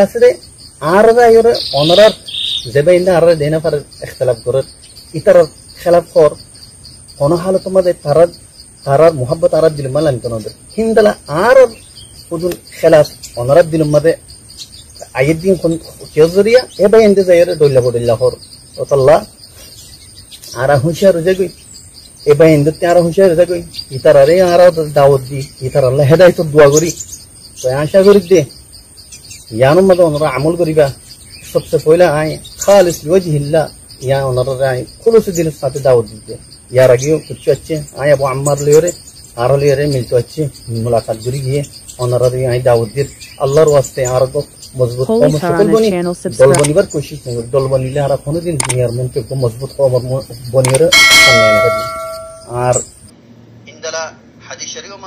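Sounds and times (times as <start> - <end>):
man speaking: 0.0 - 6.5, 7.2 - 14.2, 15.0 - 19.4, 20.5 - 21.6, 22.3 - 27.0, 27.6 - 28.5, 29.5 - 52.9, 53.7 - 55.0
crickets chirping: 0.0 - 55.0
high-pitched whine: 50.6 - 53.0
faint high-pitched tone: 51.0 - 52.9.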